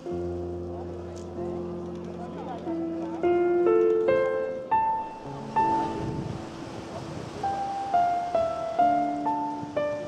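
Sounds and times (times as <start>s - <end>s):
slow solo piano: 0.0s - 10.0s.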